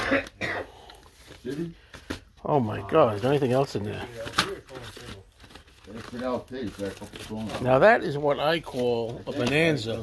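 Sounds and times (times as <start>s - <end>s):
record sleeves rustling: 3.0s - 10.0s.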